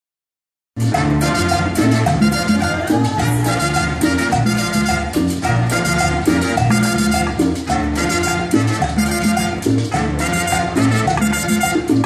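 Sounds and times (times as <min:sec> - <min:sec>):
salsa band playing: 0:00.8 - 0:12.0.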